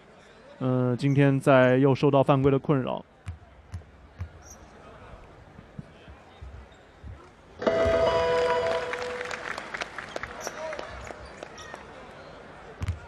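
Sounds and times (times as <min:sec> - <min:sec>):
arena noise with held tones: 0:07.6 - 0:10.3.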